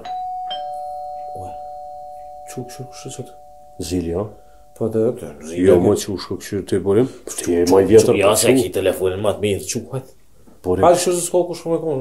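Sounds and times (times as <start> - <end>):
two-tone doorbell chime: 0.0 - 5.5.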